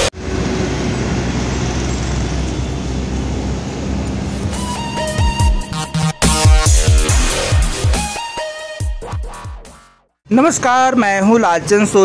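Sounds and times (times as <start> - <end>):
road traffic rumble: 0.0 - 7.6.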